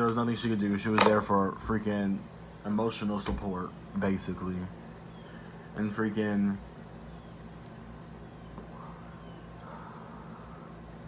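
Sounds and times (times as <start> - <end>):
low room hum: 0.0 - 11.0
man breathing while smoking: 8.6 - 11.0.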